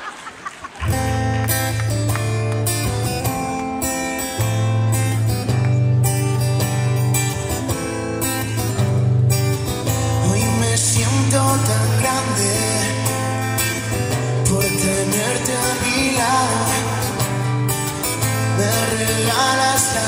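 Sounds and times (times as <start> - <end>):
live band playing: 0.8 - 20.0
acoustic guitar strumming: 0.9 - 20.0.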